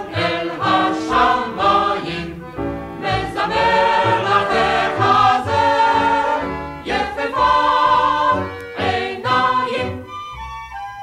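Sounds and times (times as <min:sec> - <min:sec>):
vocal group singing: 0:00.0 - 0:02.4, 0:03.0 - 0:10.1
instrumental accompaniment: 0:00.0 - 0:11.0.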